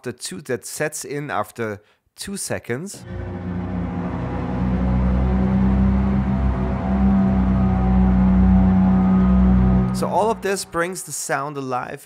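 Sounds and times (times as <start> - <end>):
low held synth notes: 3.0 - 11.1.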